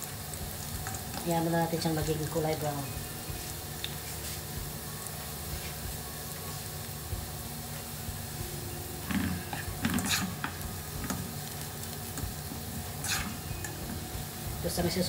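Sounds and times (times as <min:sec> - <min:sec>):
garlic sizzling in hot oil: 0:00.0 - 0:15.0.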